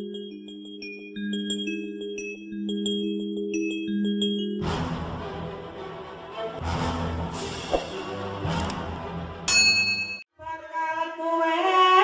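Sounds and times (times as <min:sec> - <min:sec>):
bright bell-like ding: 0:09.5 - 0:10.3.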